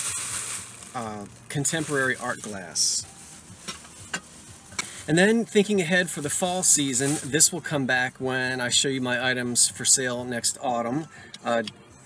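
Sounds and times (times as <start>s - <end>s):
faint rustling and shuffling: 0.0s - 5.3s, 6.0s - 7.5s.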